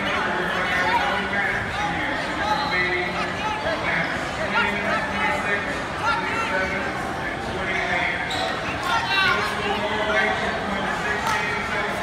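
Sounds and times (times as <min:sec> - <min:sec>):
people calling out in gymnasium: 0:08.2 - 0:10.1.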